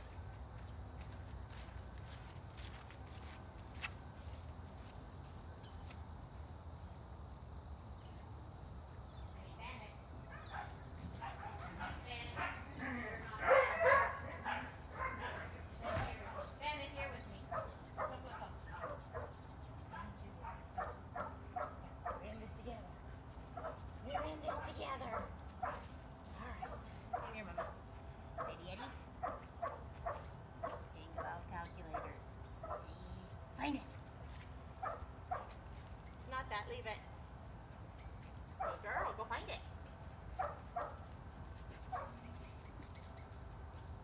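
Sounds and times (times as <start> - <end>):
dog calling: 13.4 - 16.5.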